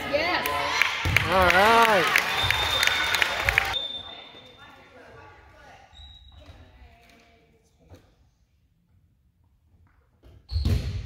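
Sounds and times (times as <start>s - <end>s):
voices echoing in gym: 0.0s - 9.5s.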